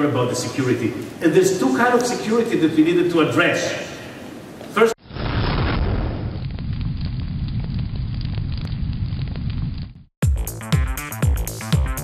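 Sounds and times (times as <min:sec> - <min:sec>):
fire crackling: 0:04.2 - 0:10.2.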